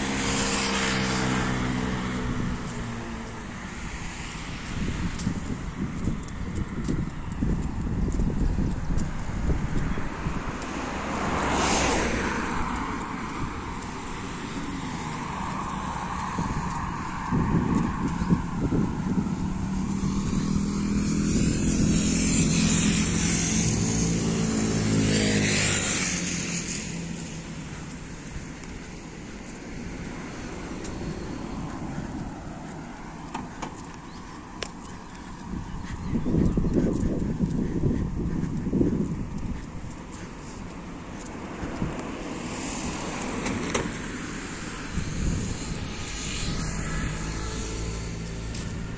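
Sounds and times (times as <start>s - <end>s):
quiet traffic noise: 0.0s - 48.9s
vehicle driving past: 10.2s - 35.6s, 41.2s - 48.9s.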